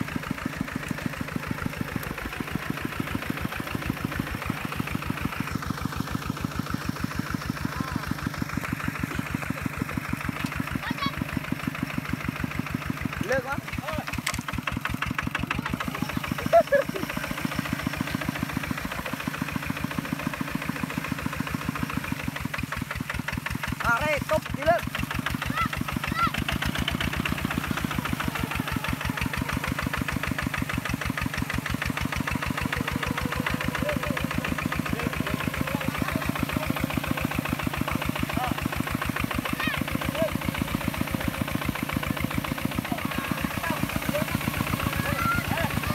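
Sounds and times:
diesel tractor engine running: 0.0 - 45.9
person shouting: 25.5 - 26.4, 39.5 - 39.9.

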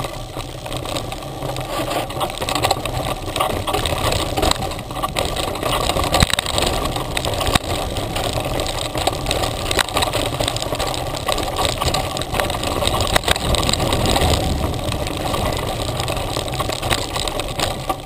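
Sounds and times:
bike knocks and rattles over bumps: 0.0 - 18.0
knobby tyres rumbling on dirt: 0.0 - 18.0.

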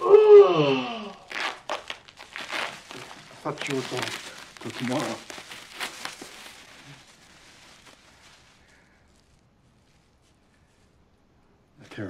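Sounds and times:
plastic bag crinkling and tearing: 0.8 - 10.3.

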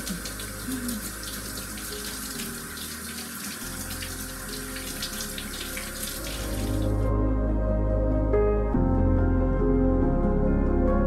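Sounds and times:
faucet water running into sink: 0.0 - 7.1
soft background music: 0.0 - 11.0.

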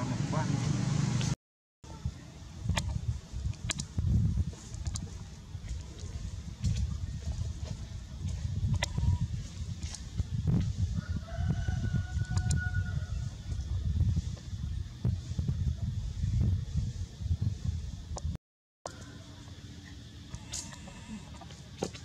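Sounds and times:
wind rumble on microphone: 1.9 - 18.4
rooster crowing faintly: 10.8 - 13.5.

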